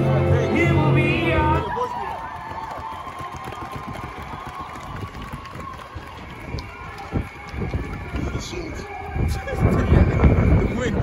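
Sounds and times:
hubbub of indistinct voices: 0.0s - 2.5s, 5.1s - 11.0s
dense patter of footsteps: 1.8s - 10.4s.

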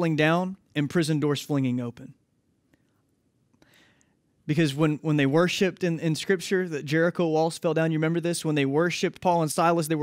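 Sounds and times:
soft intake of breath: 2.8s - 4.4s.

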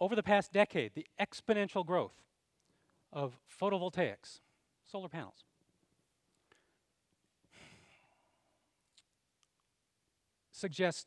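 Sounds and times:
man breathing: 6.4s - 8.8s.

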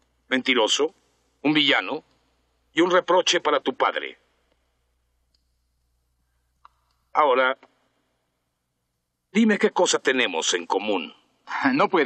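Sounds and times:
man speaking: 0.3s - 2.1s, 2.7s - 4.2s, 7.1s - 7.7s, 9.3s - 12.0s.

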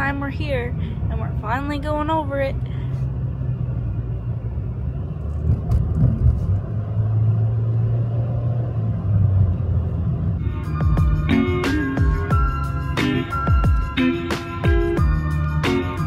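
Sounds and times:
car tyre and engine rumble: 0.0s - 11.9s
music: 10.4s - 16.0s.

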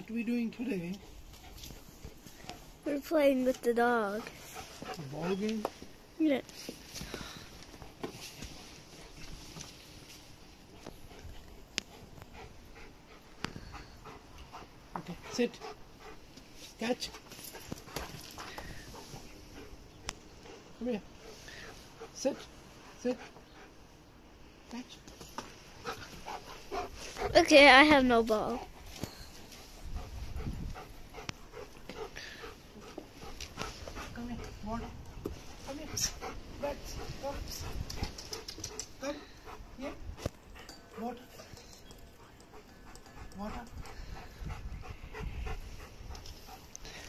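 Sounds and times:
dog panting: 0.6s - 5.9s, 10.6s - 24.0s, 25.6s - 47.0s.

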